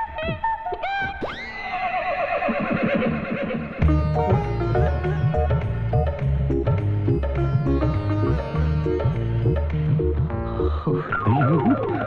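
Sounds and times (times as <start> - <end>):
comic background music: 3.8 - 12.0.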